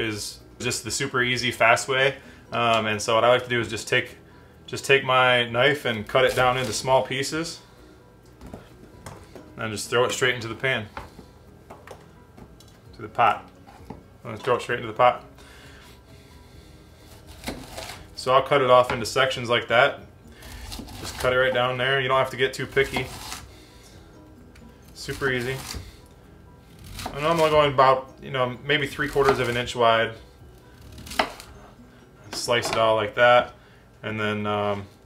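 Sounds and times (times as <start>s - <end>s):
faint background music: 0.0s - 35.0s
knife cutting cauliflower: 6.1s - 6.9s, 17.1s - 18.1s, 22.7s - 23.5s, 25.0s - 25.9s, 26.8s - 27.7s, 29.0s - 29.7s, 30.8s - 31.5s
knife crunching through cauliflower: 17.1s - 18.1s, 22.8s - 23.5s
knife striking wooden cutting board: 22.8s - 23.4s.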